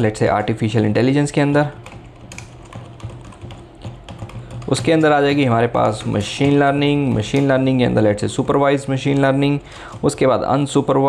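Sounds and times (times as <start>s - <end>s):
keyboard typing: 1.2s - 10.8s.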